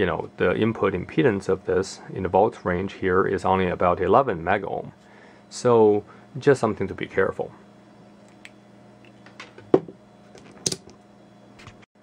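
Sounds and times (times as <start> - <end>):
low steady hum: 0.0 - 11.8.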